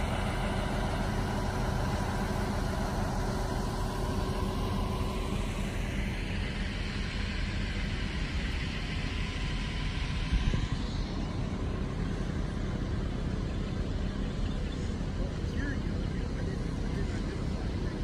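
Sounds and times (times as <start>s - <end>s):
engine idling: 0.0s - 18.0s
outdoor noise: 0.0s - 18.0s.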